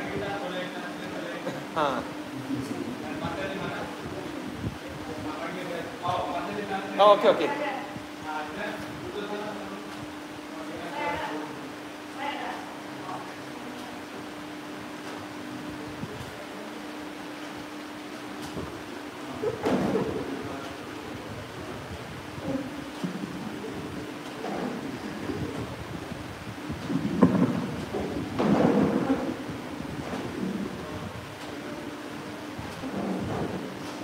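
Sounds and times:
microphone handling bumps and rustles: 0:18.3 - 0:34.0.

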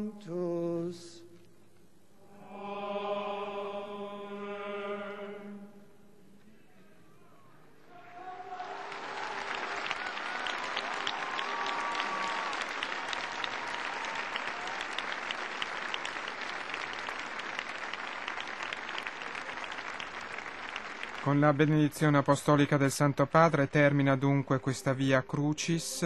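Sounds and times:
large crowd applauding: 0:07.9 - 0:25.1.

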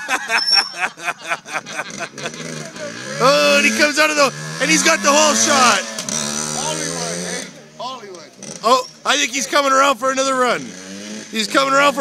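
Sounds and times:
dirt bike engine running: 0:01.5 - 0:07.5.

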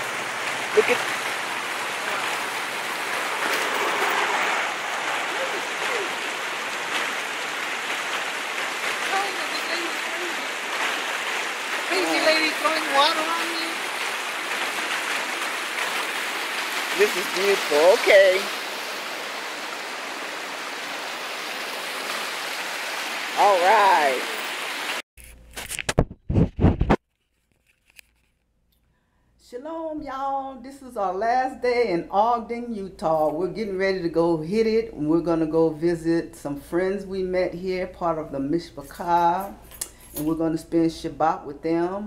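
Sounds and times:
stream water rushing: 0:00.0 - 0:25.0.

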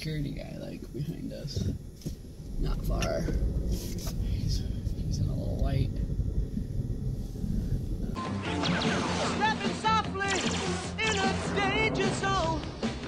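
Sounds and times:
car cabin rumble: 0:00.0 - 0:08.2
cartoon music: 0:08.2 - 0:12.2.

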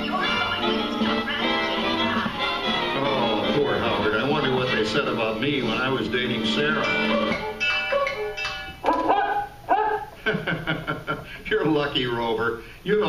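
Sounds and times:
show music playing: 0:00.0 - 0:08.8
recorded dog barking and yipping: 0:07.3 - 0:10.2.

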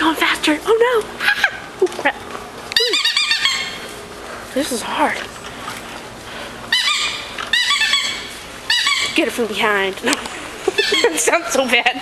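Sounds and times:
bicycle squeaking: 0:02.8 - 0:04.0, 0:06.7 - 0:09.4.

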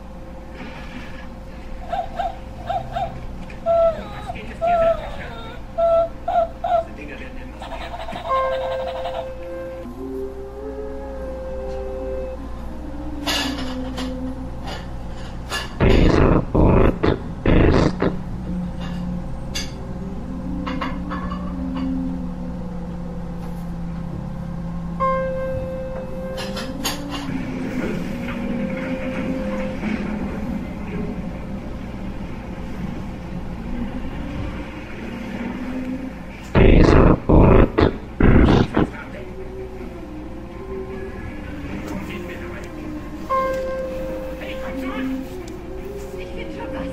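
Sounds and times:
dark ambient drone: 0:00.0 - 0:46.9
guttural growls: 0:15.8 - 0:18.3, 0:36.6 - 0:39.1.

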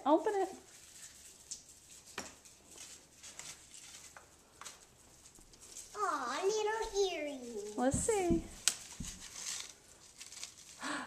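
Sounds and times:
package crinkling and clicking: 0:08.6 - 0:10.8.

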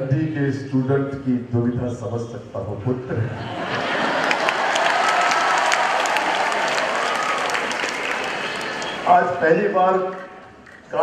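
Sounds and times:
audience applauding: 0:03.8 - 0:09.4.

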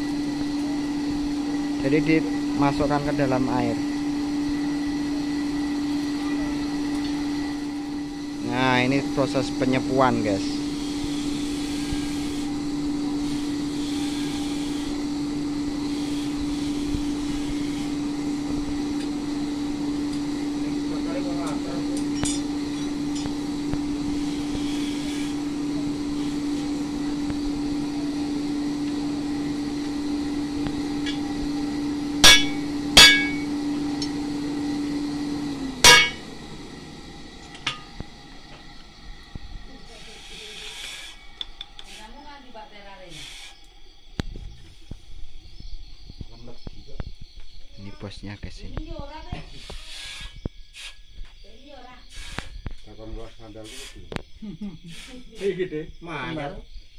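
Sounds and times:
air blower humming: 0:00.0 - 0:46.8.

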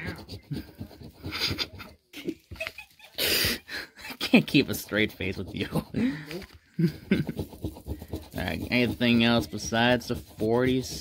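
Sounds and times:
man's stifled laughter: 0:00.6 - 0:04.4, 0:05.9 - 0:07.5.

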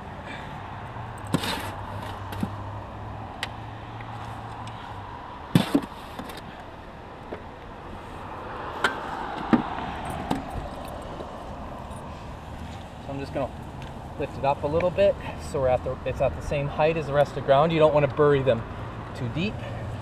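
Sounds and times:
spade scraping and knocking: 0:01.2 - 0:02.6.

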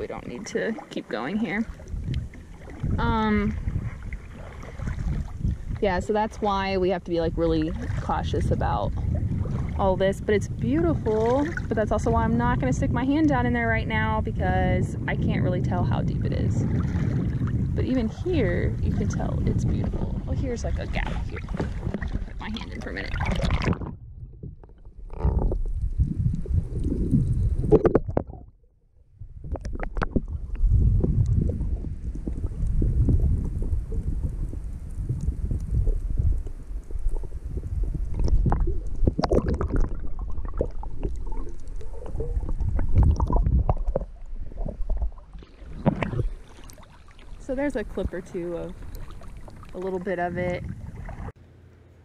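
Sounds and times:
water splashing: 0:00.0 - 0:28.5, 0:29.2 - 0:51.4
underwater rumble and gurgle: 0:00.0 - 0:51.4.

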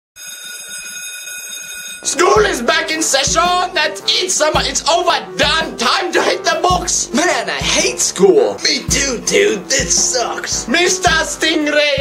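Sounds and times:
school bell ringing: 0:00.2 - 0:02.7.

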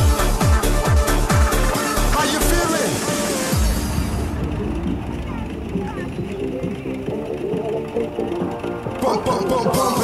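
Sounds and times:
background music: 0:00.0 - 0:10.0
people talking and calling: 0:01.8 - 0:10.0.

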